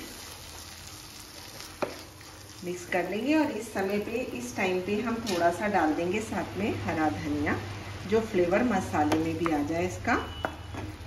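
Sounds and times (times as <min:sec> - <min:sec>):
spatula stirring: 0:00.0 - 0:04.4
masala sizzling in a pan: 0:00.0 - 0:11.0.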